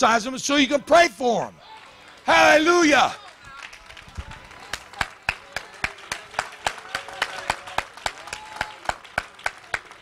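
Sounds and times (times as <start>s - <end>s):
hands clapping in rhythm: 3.4s - 10.0s.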